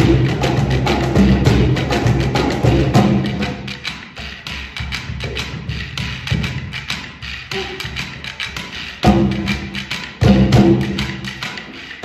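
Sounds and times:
hand drums playing: 0.0 - 12.0.

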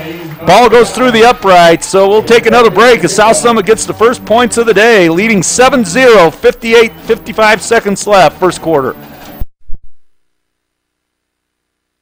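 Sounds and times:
broadcast field sound: 0.0 - 10.1.

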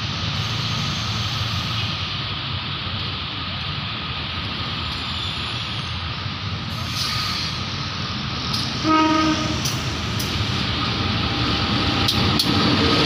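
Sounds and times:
diesel locomotive passing: 0.0 - 13.0
train horn toot: 8.8 - 9.8
wheels clicking on rails: 11.6 - 13.0.

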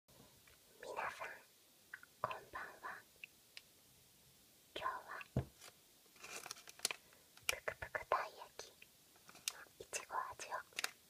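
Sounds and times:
person whispering: 0.7 - 1.5, 2.2 - 3.1, 4.7 - 5.4, 7.4 - 8.8, 9.4 - 10.9.

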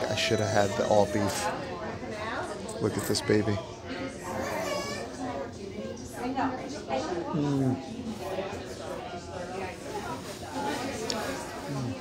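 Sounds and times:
background voices chattering: 0.0 - 12.0.

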